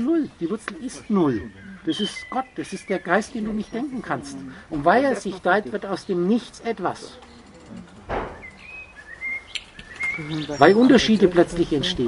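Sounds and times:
bird whistling high notes: 8.3s - 10.8s.

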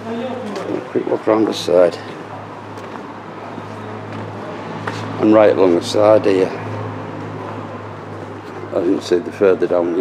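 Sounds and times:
street background hum: 0.0s - 10.0s.

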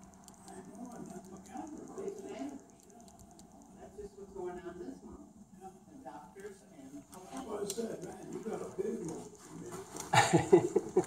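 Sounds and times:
people talking quietly: 0.0s - 11.0s.

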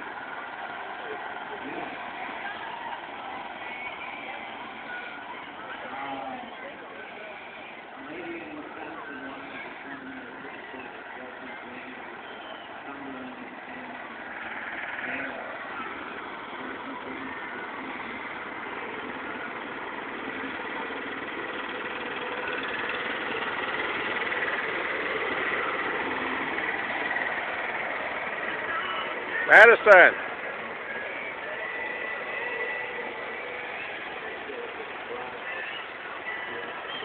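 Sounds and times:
small locomotive engine running: 0.0s - 37.0s.

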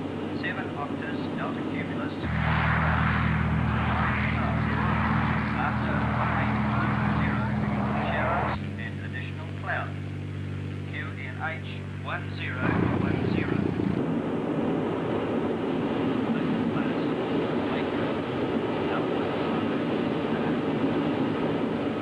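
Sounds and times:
aircraft in flight drone: 0.0s - 22.0s.

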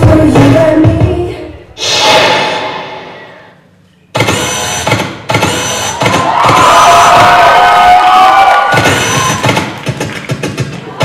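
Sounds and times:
audience cheering and shouting: 5.9s - 10.0s
dance music beat: 8.7s - 11.0s.

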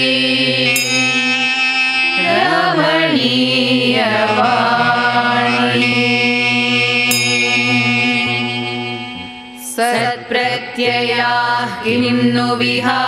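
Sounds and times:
instrumental accompaniment: 0.0s - 11.9s
women chanting: 0.0s - 13.0s.

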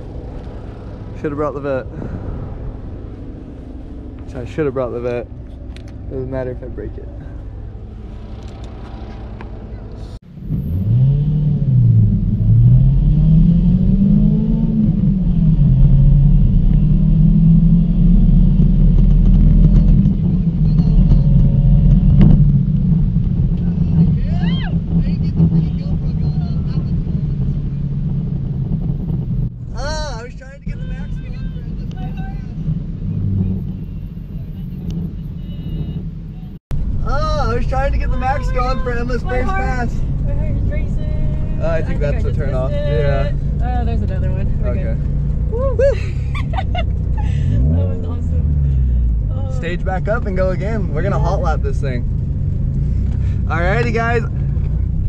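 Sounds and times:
supercharged car engine revving: 0.0s - 29.6s, 37.1s - 55.0s.

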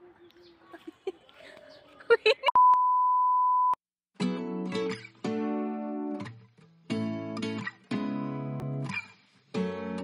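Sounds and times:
steady test tone beep: 2.5s - 3.8s.

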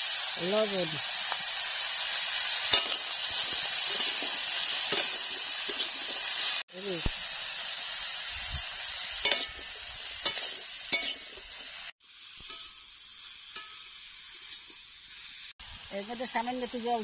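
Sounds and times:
vegetables sizzling in pan: 0.0s - 17.0s
metal spatula scraping pan: 3.8s - 6.2s, 9.2s - 11.5s.

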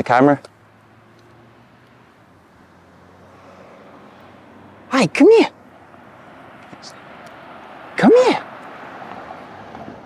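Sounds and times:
pickup truck approaching: 0.0s - 10.0s.

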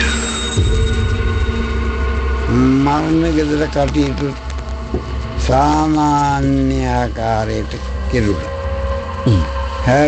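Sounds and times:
steady background drone: 0.0s - 10.0s
deep low rumble: 0.6s - 10.0s.

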